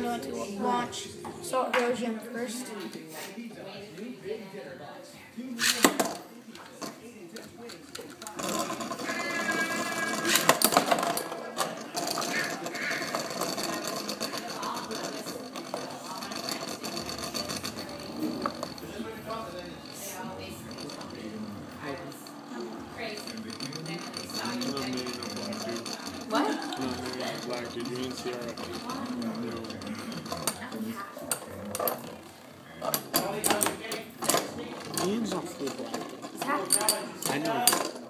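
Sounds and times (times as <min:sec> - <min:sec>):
spinning tops whirring rattle: 0:07.8 - 0:38.0
spinning tops clattering: 0:08.2 - 0:32.0.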